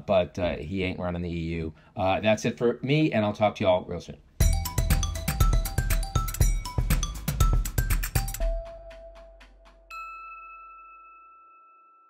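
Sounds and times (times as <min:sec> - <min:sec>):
bright bell-like chime: 0:04.4 - 0:12.0.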